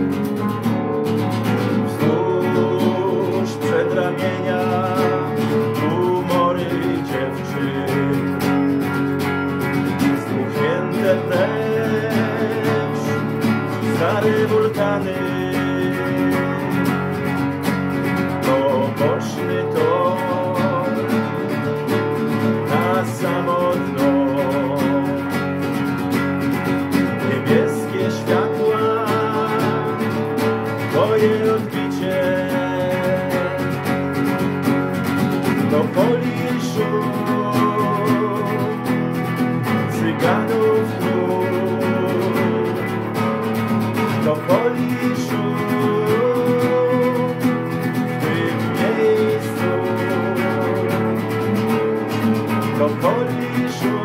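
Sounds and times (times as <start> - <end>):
electric guitar: 0.0 - 54.0
man singing: 0.0 - 54.0
strummed acoustic guitar: 0.0 - 54.0.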